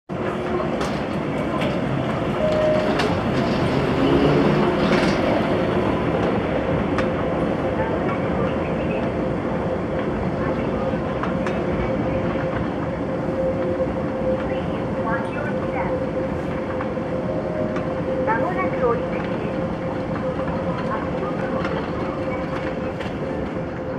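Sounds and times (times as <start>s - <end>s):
moving walkway rumble: 0.1s - 23.9s
constant hum: 4.6s - 23.9s
treadway clicks: 17.7s - 23.9s.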